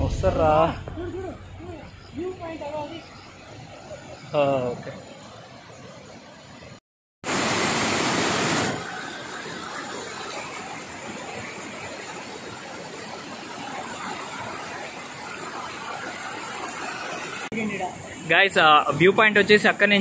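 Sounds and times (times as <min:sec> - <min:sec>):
river water rushing over rocks: 0:03.1 - 0:20.0.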